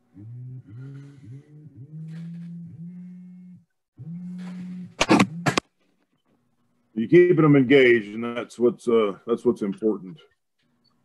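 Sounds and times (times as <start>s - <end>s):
woman humming: 0.0s - 5.6s.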